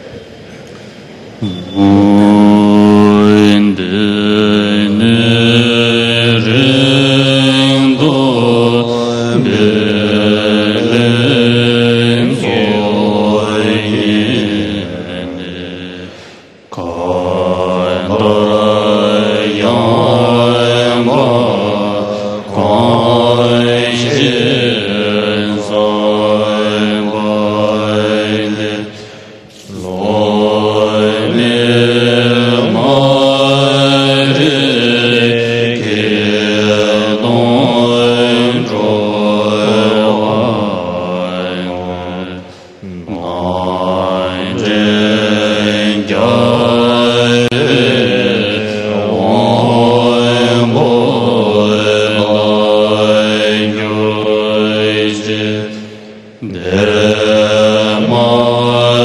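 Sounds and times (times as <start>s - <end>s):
monks chanting in unison: 0.0s - 59.0s.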